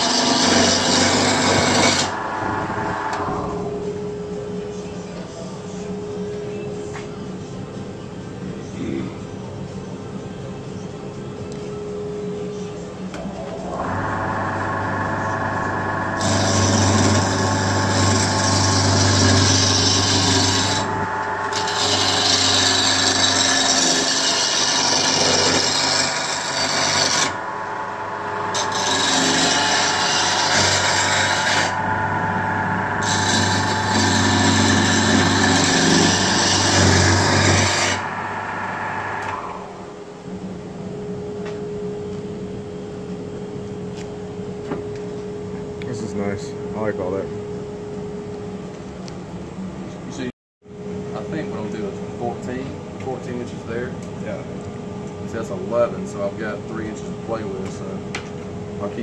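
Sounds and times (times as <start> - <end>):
lathe motor humming: 0.0 - 4.6, 13.3 - 40.4
gouge scraping wood: 16.2 - 27.4, 28.5 - 31.8, 33.0 - 38.0.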